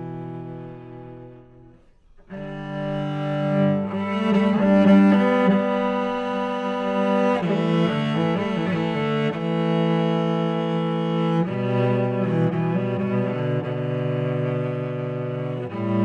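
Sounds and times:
bowed cello melody: 0:00.0 - 0:16.0.

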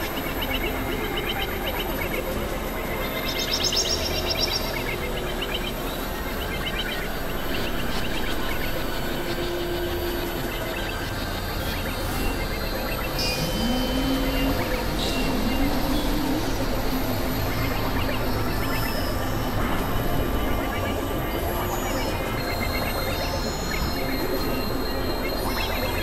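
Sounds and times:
low gliding synth tone: 0:00.0 - 0:26.0
noisy synthesizer drone: 0:00.0 - 0:26.0.

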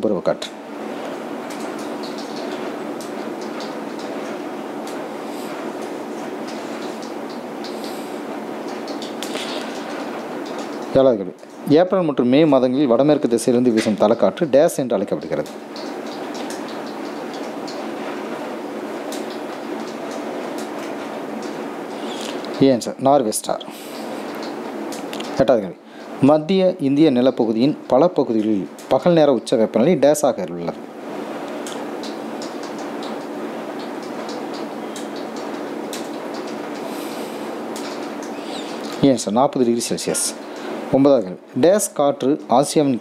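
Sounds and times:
steady background hiss: 0:00.0 - 0:43.0.

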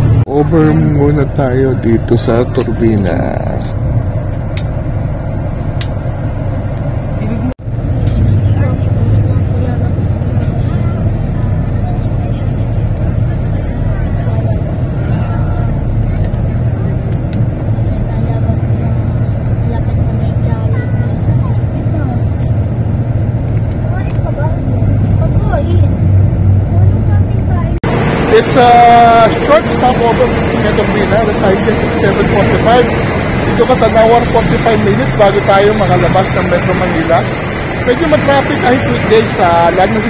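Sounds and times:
bus engine and road rumble: 0:00.0 - 0:40.0.

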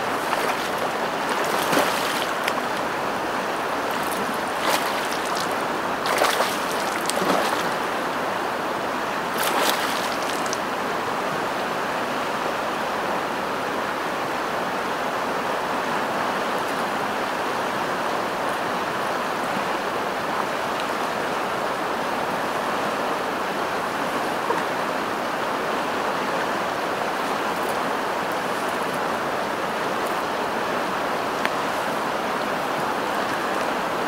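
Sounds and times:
river running over rapids: 0:00.0 - 0:34.0.

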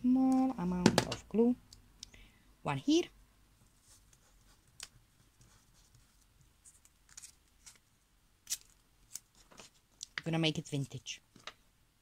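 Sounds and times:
paper rustling under fingertips: 0:03.7 - 0:09.8.

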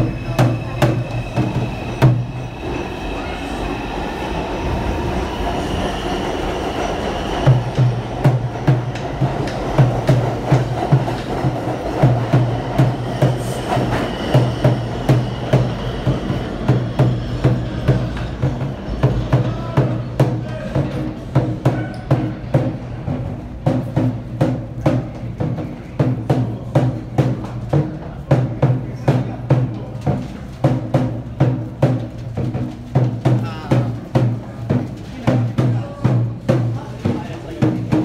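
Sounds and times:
wheels rumbling on rails: 0:00.0 - 0:21.4
subway train pulling out: 0:00.0 - 0:38.0.

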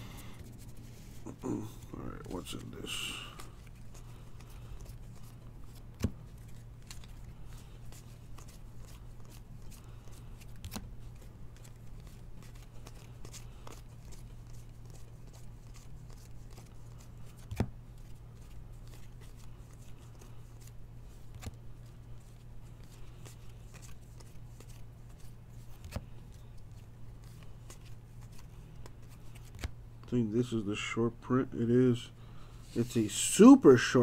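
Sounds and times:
cards being flipped through: 0:00.0 - 0:30.1
steady low hum: 0:00.0 - 0:34.0.

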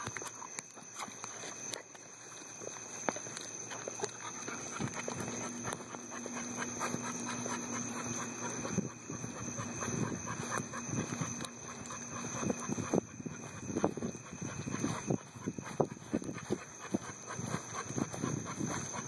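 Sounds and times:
stroller wheels rattling on pavement: 0:00.0 - 0:19.0
dog panting: 0:03.1 - 0:19.0.

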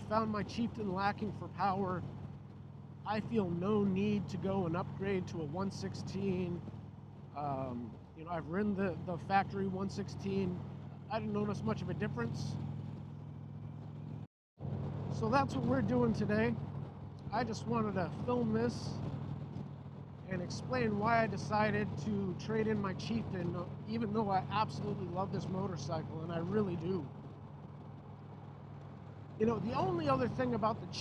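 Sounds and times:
motorcycle engine cruising: 0:00.0 - 0:31.0
road noise: 0:00.0 - 0:31.0.

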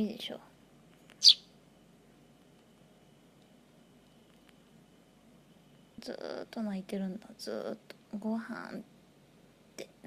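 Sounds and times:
bird chick chirping: 0:01.2 - 0:01.5.

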